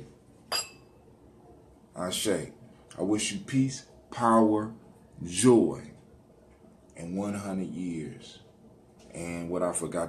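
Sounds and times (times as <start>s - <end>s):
drinking glass clink: 0.5s - 0.9s.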